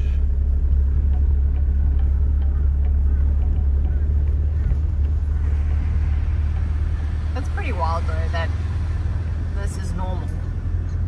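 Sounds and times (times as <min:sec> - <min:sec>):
vehicle driving on sand: 0:00.0 - 0:11.0.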